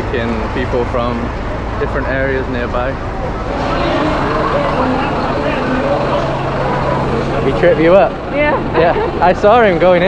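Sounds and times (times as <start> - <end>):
murmur of voices: 0.0 - 10.0
steady low hum: 0.0 - 10.0
truck engine running: 0.0 - 10.0.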